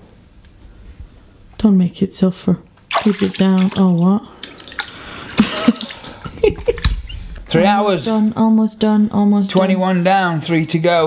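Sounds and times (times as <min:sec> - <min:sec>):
liquid sloshing in a bathtub: 0:02.9 - 0:07.0.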